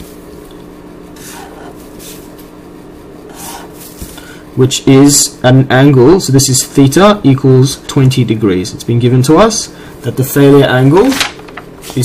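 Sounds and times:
faint steady hum: 0.0s - 12.0s
marker scratching on surface: 1.2s - 2.3s, 3.3s - 4.1s.

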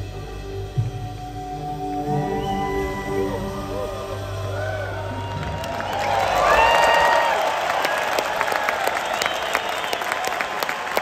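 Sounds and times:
band playing sustained note: 0.0s - 5.7s
crowd applauding and cheering: 1.9s - 11.0s
piercing whistles: 2.0s - 10.4s.

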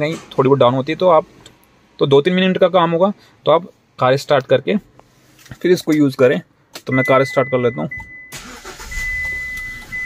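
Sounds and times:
car engine starting: 8.3s - 10.0s.

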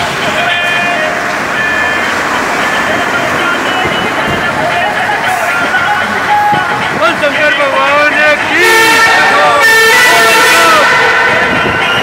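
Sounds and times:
people shouting in a tunnel: 8.2s - 12.0s.

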